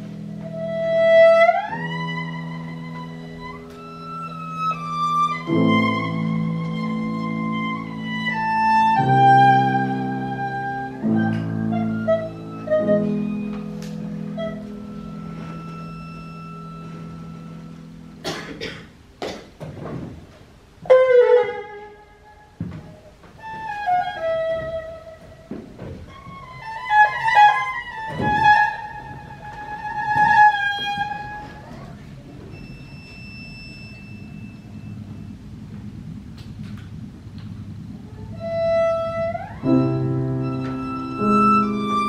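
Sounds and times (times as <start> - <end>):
soft low piano notes: 0.0 - 42.0
short coughs: 18.2 - 19.5
held piano chord: 38.1 - 42.0.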